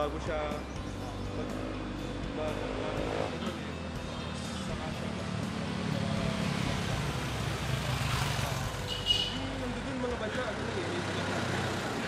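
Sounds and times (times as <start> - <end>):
traffic engine rumble: 0.0 - 12.0.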